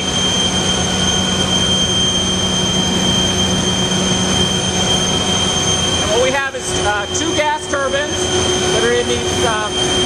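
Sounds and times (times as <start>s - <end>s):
gas turbine roar: 0.0s - 10.0s
high-pitched whines: 0.0s - 10.0s
low hum: 0.0s - 10.0s.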